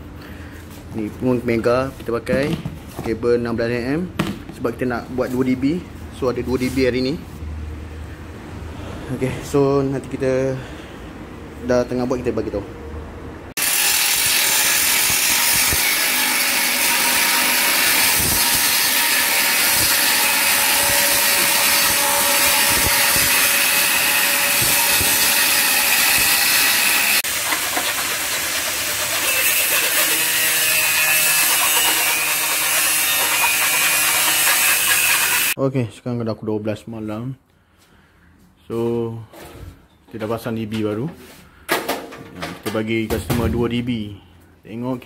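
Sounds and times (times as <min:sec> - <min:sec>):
angle grinder cutting sheet metal: 0:13.6 - 0:35.6.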